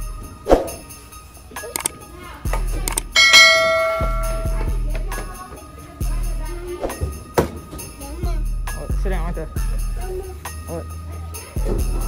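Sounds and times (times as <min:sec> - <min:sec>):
bass background music: 0:00.0 - 0:12.0
click: 0:02.9 - 0:03.2
bright bell ding: 0:03.1 - 0:04.7.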